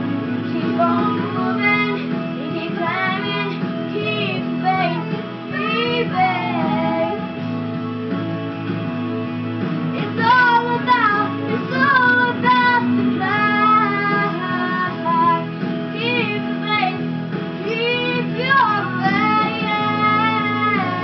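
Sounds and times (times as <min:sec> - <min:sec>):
instrumental accompaniment: 0:00.0 - 0:21.0
woman singing a ballad: 0:00.4 - 0:07.3, 0:10.0 - 0:17.0, 0:17.6 - 0:21.0.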